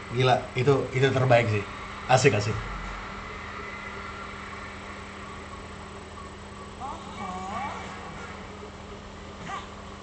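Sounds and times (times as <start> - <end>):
constant room hum: 0.0 - 10.0.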